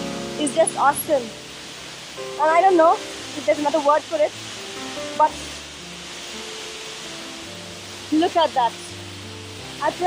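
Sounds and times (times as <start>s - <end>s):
soft background music: 0.0s - 10.0s
waterfall rushing: 0.0s - 10.0s.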